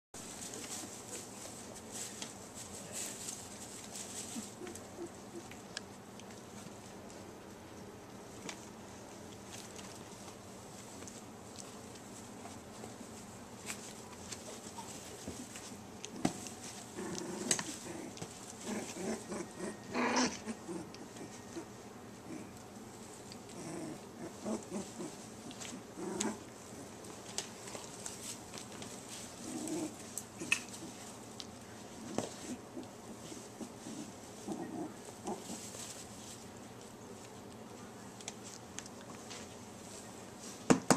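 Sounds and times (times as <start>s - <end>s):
rustling clicks of bedding: 0.2s - 7.2s, 8.3s - 19.4s, 24.3s - 40.7s
puppies making vocal noises: 0.2s - 7.4s, 8.3s - 40.6s.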